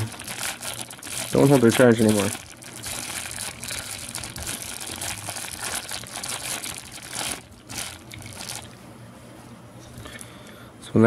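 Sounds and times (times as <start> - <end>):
plastic wrapping crinkling: 0.0 - 8.8.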